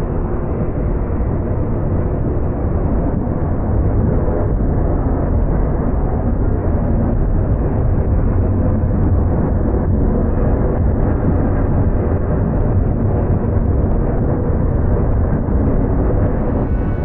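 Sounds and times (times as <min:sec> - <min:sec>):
freight train rumbling past: 0:16.2 - 0:17.0.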